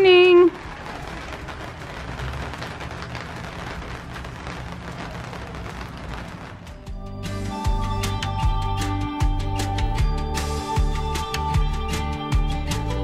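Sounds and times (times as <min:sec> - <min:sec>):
steady rain falling: 0:00.0 - 0:07.4.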